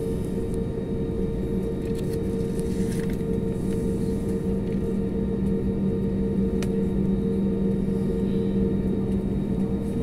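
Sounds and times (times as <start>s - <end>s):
jet engines rumbling in cabin: 0.0s - 10.0s.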